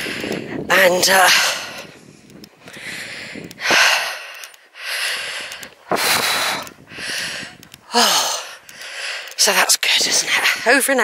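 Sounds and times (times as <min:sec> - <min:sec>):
person breathing heavily: 0:00.0 - 0:00.6, 0:01.2 - 0:09.4.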